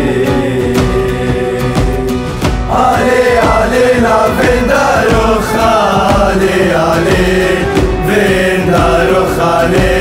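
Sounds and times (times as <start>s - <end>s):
steady beat: 0.0s - 10.0s
group of voices chanting: 2.7s - 10.0s.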